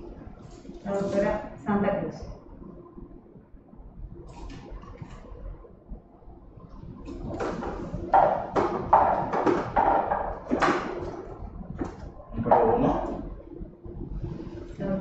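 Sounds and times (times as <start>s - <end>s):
plastic balls clattering in drum: 7.2s - 13.0s.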